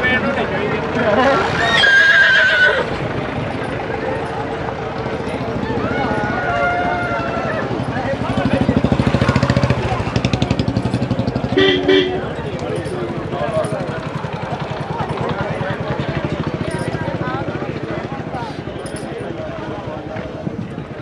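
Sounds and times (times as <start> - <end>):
people's voices: 0.0 - 21.0
horse whinnying: 1.4 - 3.0.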